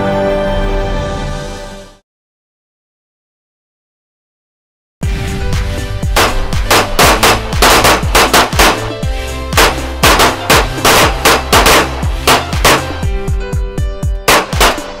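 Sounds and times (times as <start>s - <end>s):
background music: 0.0s - 2.0s, 5.0s - 15.0s
pistol shots: 6.2s - 8.9s, 9.6s - 13.0s, 14.3s - 15.0s.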